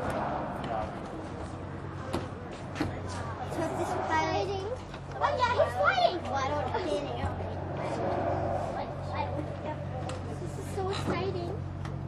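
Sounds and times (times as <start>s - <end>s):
excited voices talking: 0.0s - 11.7s
steady low hum: 0.0s - 12.0s.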